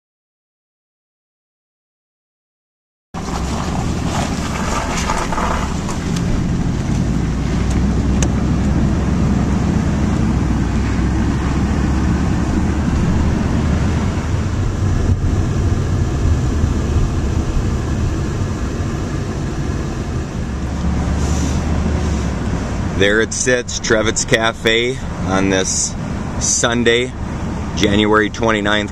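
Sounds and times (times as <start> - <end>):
car engine drone: 3.2 - 28.9.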